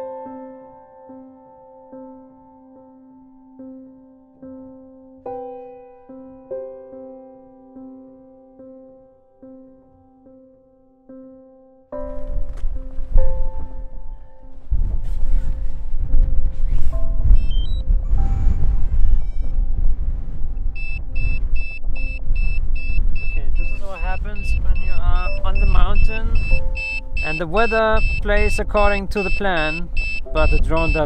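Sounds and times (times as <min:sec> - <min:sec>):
wind buffeting microphone: 0:12.2 - 0:31.0
electronic warning beeps: 0:17.3 - 0:17.9, 0:19.1 - 0:19.6, 0:20.7 - 0:31.0.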